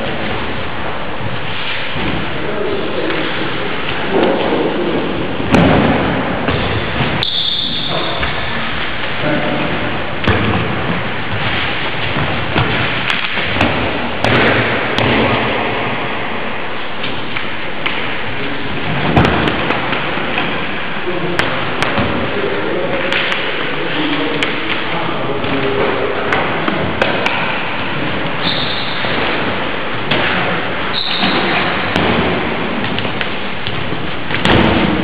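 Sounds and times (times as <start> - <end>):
steady loud hiss: 0.0 - 35.0
knocks and thuds on gym mats: 5.4 - 7.2, 7.9 - 16.1, 18.8 - 20.6, 21.3 - 22.4, 29.0 - 35.0.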